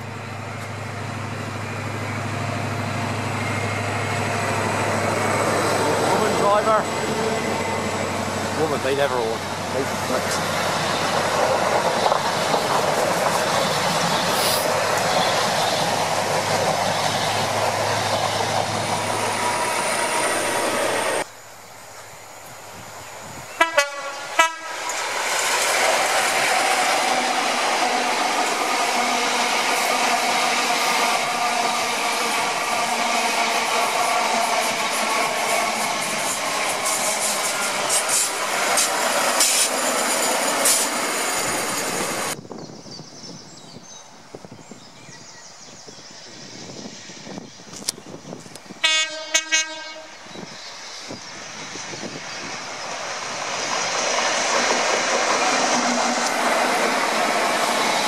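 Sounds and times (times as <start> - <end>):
train passing at speed: 0.0 - 42.8, 43.4 - 58.0
train horn blasts: 23.6 - 24.9, 48.8 - 50.2.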